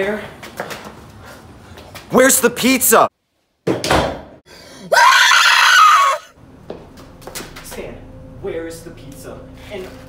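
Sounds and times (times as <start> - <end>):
man screaming: 4.9 - 6.3.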